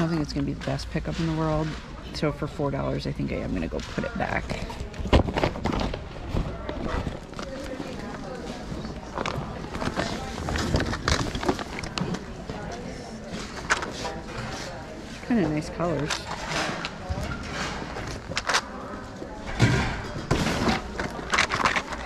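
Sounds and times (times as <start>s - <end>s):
murmur of voices: 0.0s - 22.0s
plastic toys clattering: 3.5s - 12.4s, 15.8s - 18.8s, 19.5s - 22.0s.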